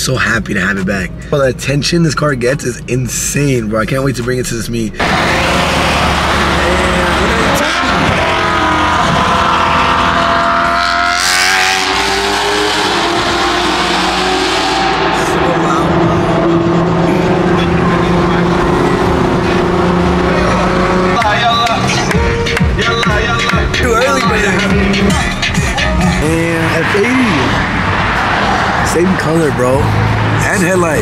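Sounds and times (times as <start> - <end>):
car engine revving: 2.3 - 31.0.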